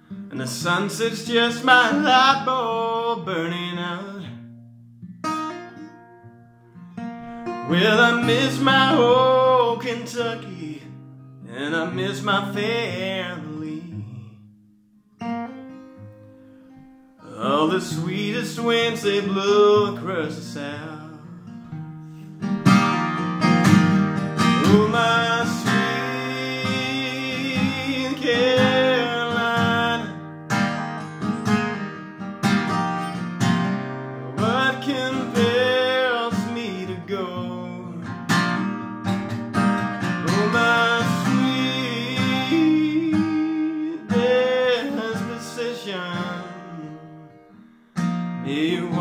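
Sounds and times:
acoustic guitar strummed and picked: 0:00.0 - 0:49.0
man singing: 0:00.3 - 0:04.4, 0:07.5 - 0:14.5, 0:17.2 - 0:21.6, 0:24.3 - 0:30.4, 0:33.5 - 0:38.7, 0:40.0 - 0:47.4, 0:48.4 - 0:49.0.

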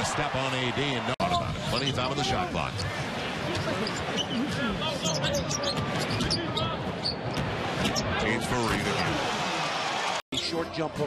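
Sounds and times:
crowd noise and voices: 0:00.0 - 0:11.0.

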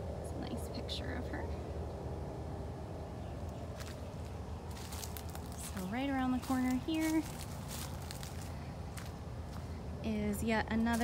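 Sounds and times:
footsteps on dry leaves: 0:03.7 - 0:11.0.

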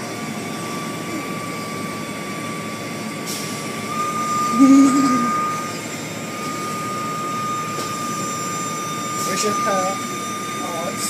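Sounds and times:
high-pitched whine: 0:00.0 - 0:11.0.

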